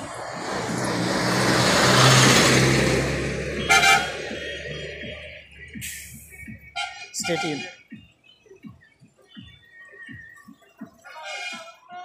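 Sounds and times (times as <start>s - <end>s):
vehicle passing by: 0.0s - 5.2s.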